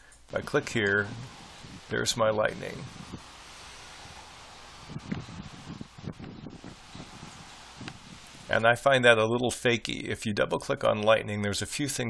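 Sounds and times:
wind hiss on microphone: 0.0s - 10.1s
soft low bumps: 0.4s - 8.8s.

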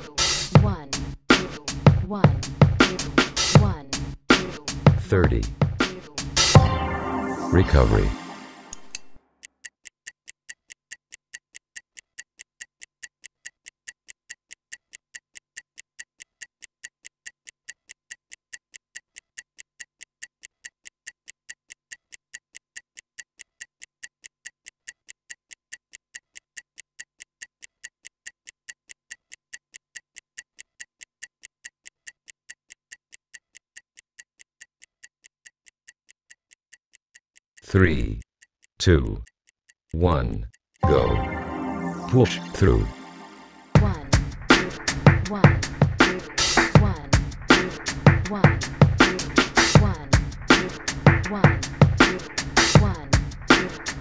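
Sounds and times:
stopwatch ticking: 8.8s - 40.8s, 43.8s - 54.0s.

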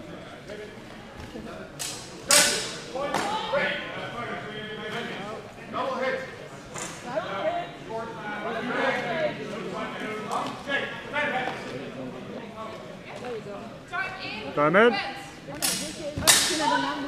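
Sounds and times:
indistinct talking of people: 0.0s - 17.0s.

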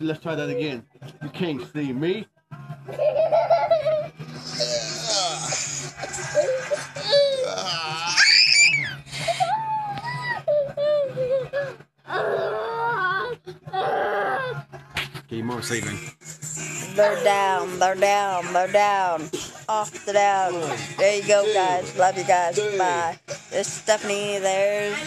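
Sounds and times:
toddler squealing and crying: 6.4s - 14.6s.

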